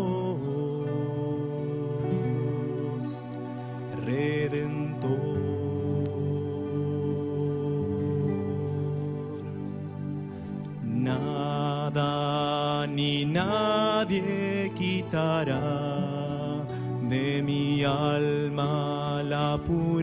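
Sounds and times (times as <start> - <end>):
man singing: 0.0 - 9.9, 10.8 - 20.0
classical guitar: 0.0 - 20.0.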